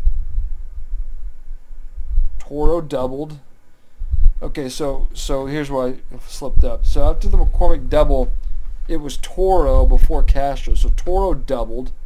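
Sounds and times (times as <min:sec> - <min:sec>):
low uneven rumble: 0:00.0 - 0:11.5.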